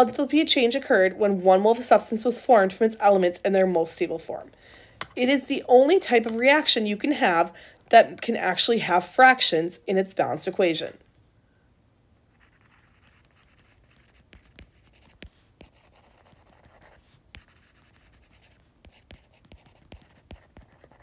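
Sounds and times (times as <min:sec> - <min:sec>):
stylus tapping on tablet screen: 0:17.4 - 0:21.0.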